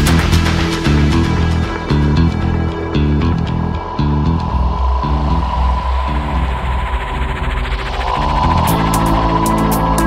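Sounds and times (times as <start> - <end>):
downtempo electronic music: 0.0 - 10.0.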